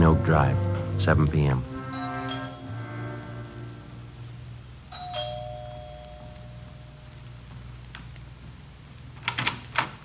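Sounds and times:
two-tone door chime: 0:01.8 - 0:03.6, 0:04.9 - 0:07.1.

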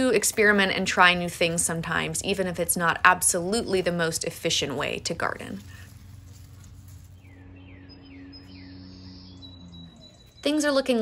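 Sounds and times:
faint low hum: 0:00.0 - 0:11.0
small bird calling: 0:05.6 - 0:11.0.

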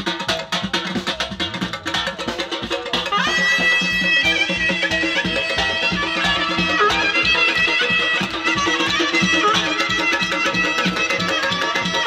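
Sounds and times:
steady drum beat: 0:00.0 - 0:12.0
reedy wind instrument melody: 0:02.9 - 0:12.0.

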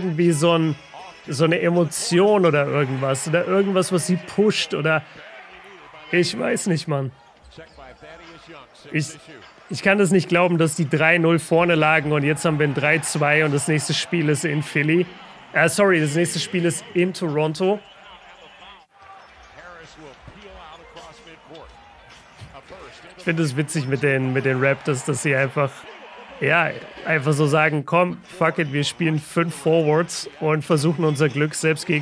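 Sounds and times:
commentator talking: 0:00.0 - 0:18.9, 0:22.5 - 0:32.0.

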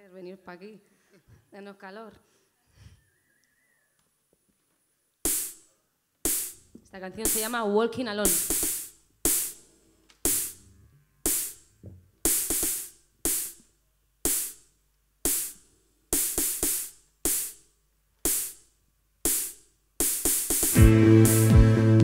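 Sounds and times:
sharp percussion hits: 0:05.3 - 0:05.6, 0:06.3 - 0:06.6, 0:07.2 - 0:07.6, 0:08.3 - 0:09.6, 0:10.2 - 0:11.7, 0:12.3 - 0:13.6, 0:19.3 - 0:22.0.

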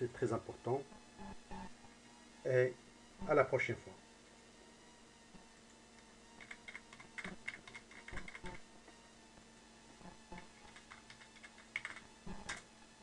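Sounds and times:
typing on computer keyboard: 0:06.4 - 0:08.6, 0:10.4 - 0:12.6.

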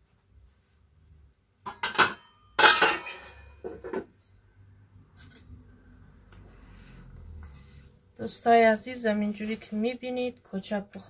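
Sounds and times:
metal cookware clanking: 0:01.7 - 0:04.1.

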